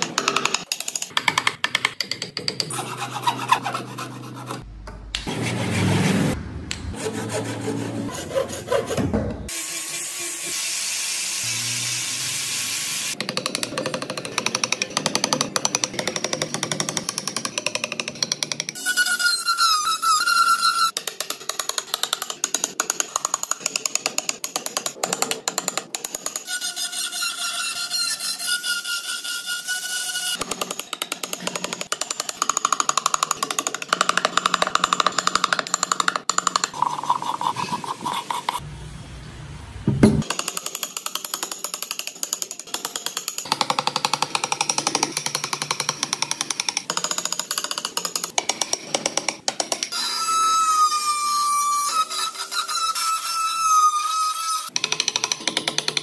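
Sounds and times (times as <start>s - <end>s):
chisel scraping wood: 2.4s - 6.3s
hand saw cutting wood: 2.7s - 4.6s, 5.2s - 9.0s.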